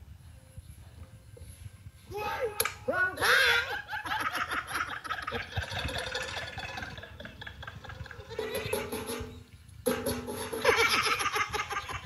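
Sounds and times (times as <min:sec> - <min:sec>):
people laughing heartily: 0:03.3 - 0:08.7, 0:10.6 - 0:12.0.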